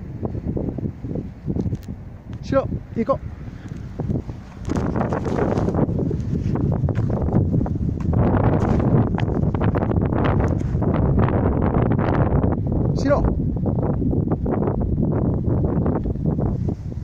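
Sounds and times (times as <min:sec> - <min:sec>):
wind buffeting microphone: 0:00.0 - 0:17.0
steps through dry grass: 0:03.6 - 0:11.0.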